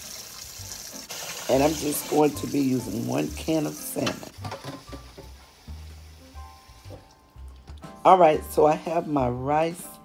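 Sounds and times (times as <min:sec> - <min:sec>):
tap running into a saucepan: 0:04.0 - 0:05.4.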